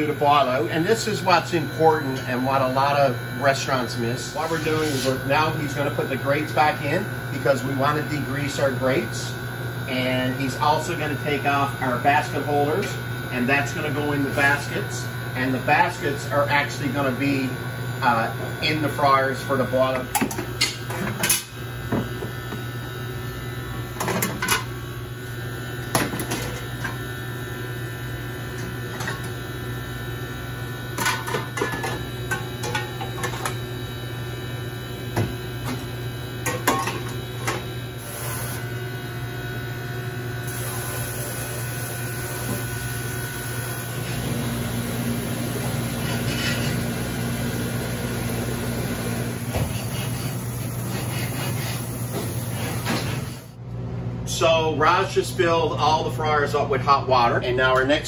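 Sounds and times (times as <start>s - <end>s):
steady machine hum: 0.0s - 58.0s.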